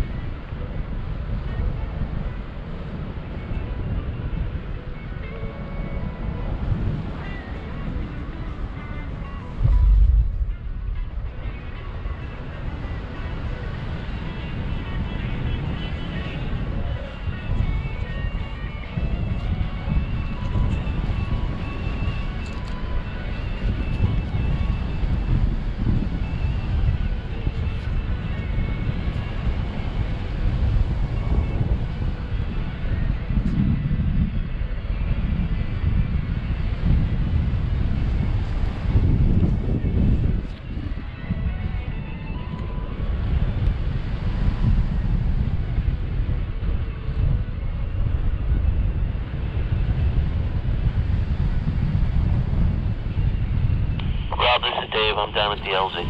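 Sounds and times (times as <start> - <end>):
wind buffeting microphone: 0.0 - 56.0.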